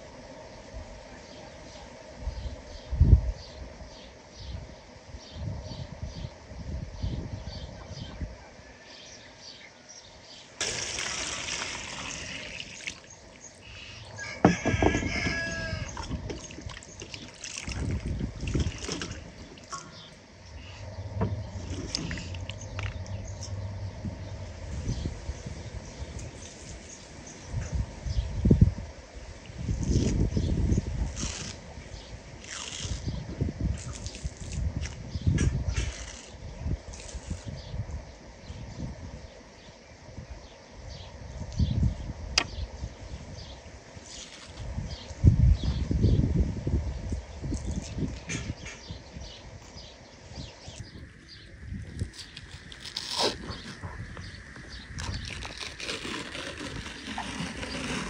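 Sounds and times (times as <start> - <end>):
onions sloshed in bowl of water: 10.6 - 13.1, 15.9 - 19.8
rooster crowing: 14.0 - 16.2
knocks on wooden table: 14.4 - 15.4.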